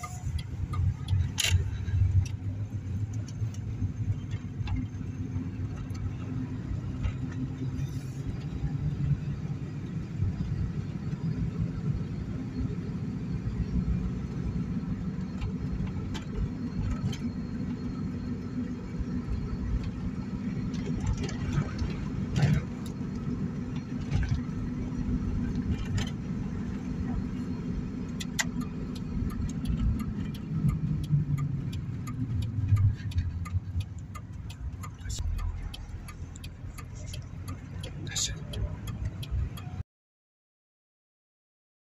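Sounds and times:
car engine and tyres rumbling: 0:00.0 - 0:39.8.

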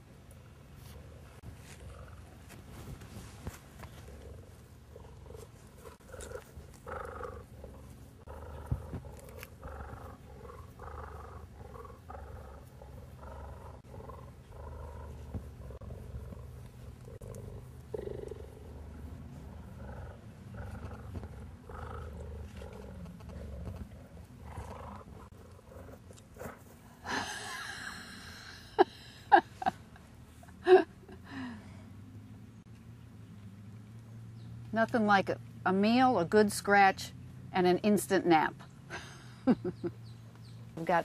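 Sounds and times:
cheetah purring deeply: 0:03.9 - 0:26.2.

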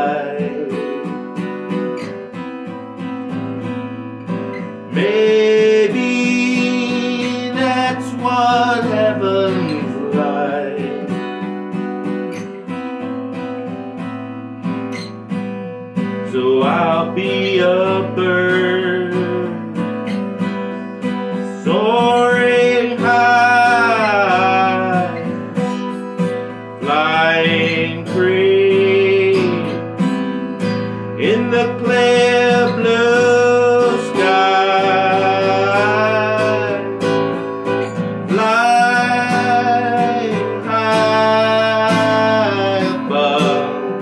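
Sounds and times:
man singing with vibrato: 0:00.0 - 0:02.0, 0:04.2 - 0:11.8, 0:15.9 - 0:44.0
strummed acoustic guitar: 0:00.0 - 0:44.0.

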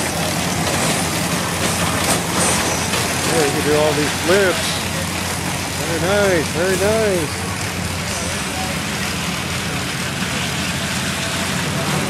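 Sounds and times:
ride machinery droning: 0:00.0 - 0:12.0.

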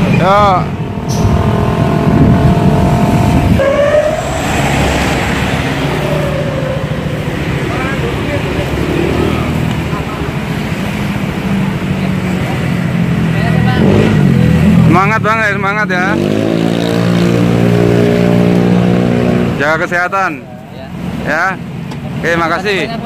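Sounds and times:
motorcycle and car engines: 0:00.0 - 0:23.0
vehicles passing: 0:00.0 - 0:23.0.

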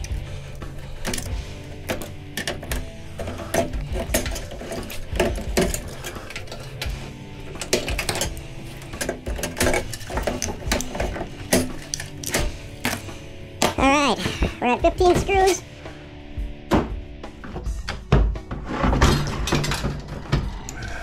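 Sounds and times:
background music: 0:00.0 - 0:21.0
tools clicking on sheet metal: 0:00.9 - 0:13.0.

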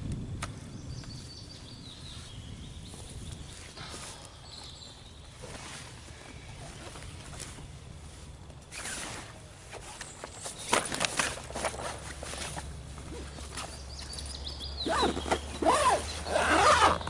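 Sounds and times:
steady low rumble: 0:00.0 - 0:05.4
fabric bag rustling: 0:08.7 - 0:17.0.

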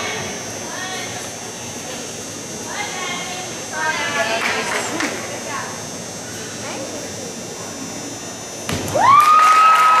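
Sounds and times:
spectators cheering: 0:08.9 - 0:10.0.

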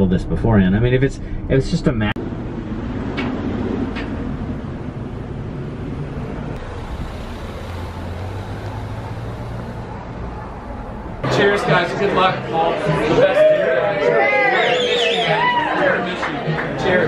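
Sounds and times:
car engine humming: 0:02.2 - 0:11.3
traffic noise: 0:02.2 - 0:13.2.

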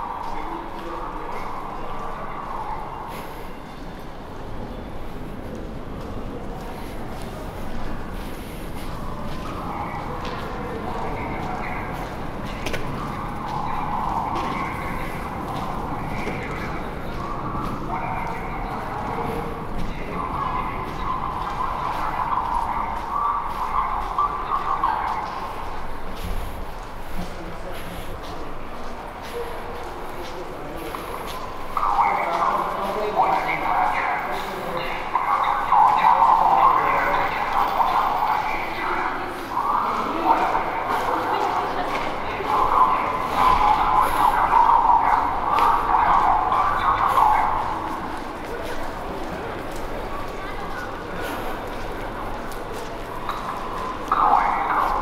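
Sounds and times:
distant indistinct voices: 0:00.0 - 0:55.0
echoing station concourse hum: 0:00.0 - 0:55.0.

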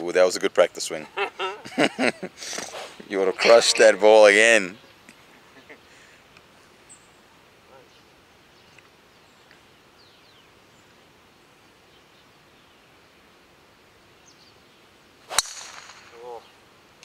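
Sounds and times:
person speaking: 0:02.9 - 0:04.7
golf driver striking ball: 0:15.3 - 0:16.4.

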